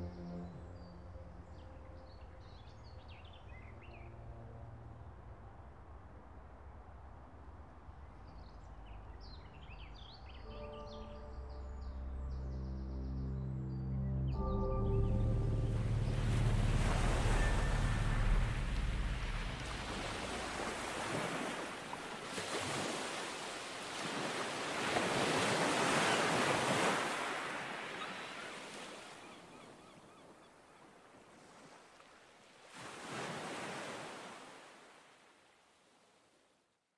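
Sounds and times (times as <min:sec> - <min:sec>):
low synth chord: 0:00.0 - 0:05.3, 0:09.6 - 0:20.8
sea waves washing in: 0:15.0 - 0:29.3, 0:31.3 - 0:35.3.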